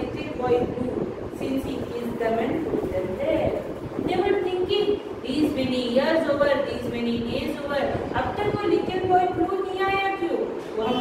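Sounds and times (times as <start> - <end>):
woman reading aloud: 0.0 - 11.0.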